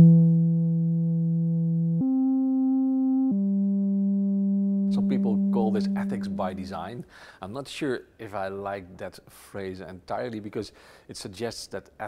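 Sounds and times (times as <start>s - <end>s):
sustained synthesizer tones: 0.0s - 6.7s.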